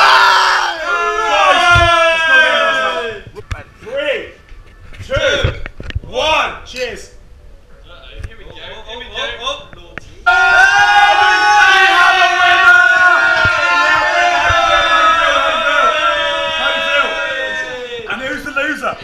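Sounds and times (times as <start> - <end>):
young men shouting and cheering: 0.0 - 4.4, 10.2 - 19.0.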